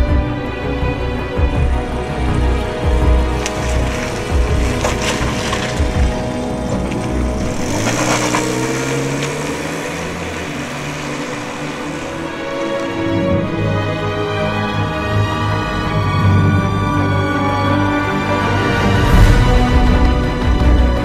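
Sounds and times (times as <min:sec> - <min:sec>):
car engine rumble: 0:00.0 - 0:21.0
film score music: 0:00.0 - 0:21.0.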